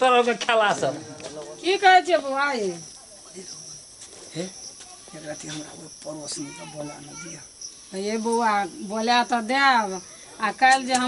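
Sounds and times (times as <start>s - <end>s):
steady high hiss: 0.0s - 11.0s.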